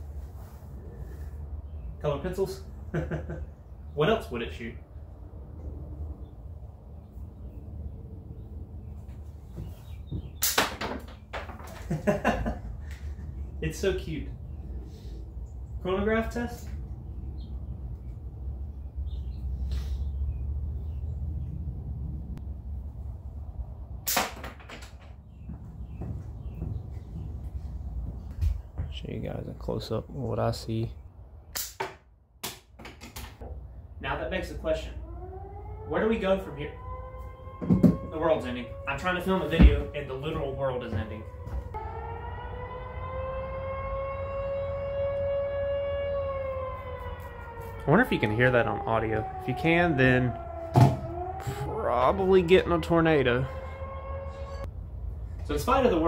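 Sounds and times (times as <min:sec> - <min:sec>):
low rumble: 0:20.2 - 0:24.0
tornado warning siren wailing: 0:34.0 - 0:56.0.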